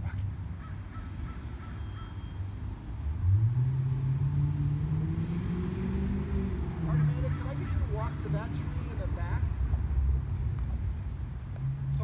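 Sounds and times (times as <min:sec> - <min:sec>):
traffic rumble: 0:00.0 - 0:12.0
vehicle engine: 0:00.0 - 0:12.0
vehicle accelerating past: 0:03.0 - 0:09.0.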